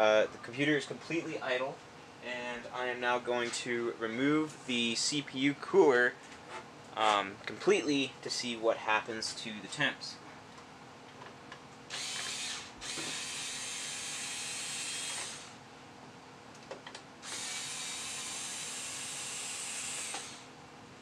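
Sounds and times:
cordless drill running: 11.9 - 15.6, 17.2 - 20.5.

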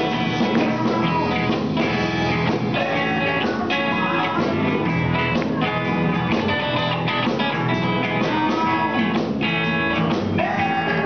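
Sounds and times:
live blues band with electric guitars: 0.0 - 11.0.

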